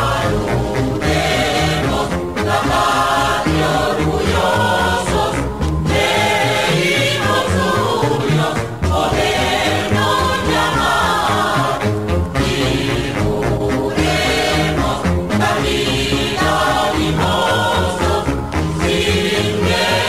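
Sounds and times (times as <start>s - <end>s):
choral song on radio: 0.0s - 20.0s.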